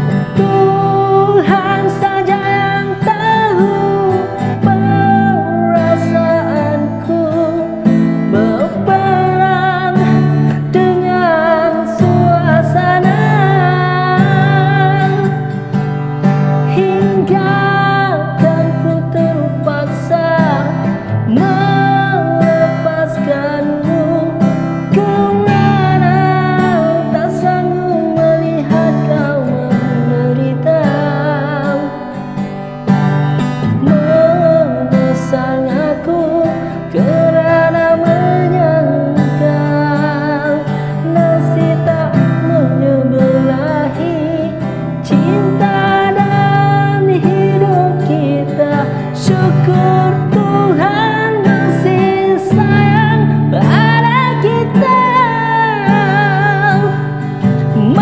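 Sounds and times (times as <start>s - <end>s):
man singing with vibrato: 0.0s - 32.5s, 33.6s - 58.0s
strummed acoustic guitar: 0.0s - 58.0s.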